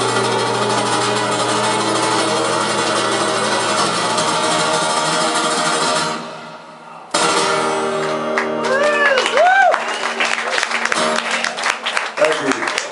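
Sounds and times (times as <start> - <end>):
acoustic guitar strummed hard: 0.0 - 8.8, 10.8 - 11.5.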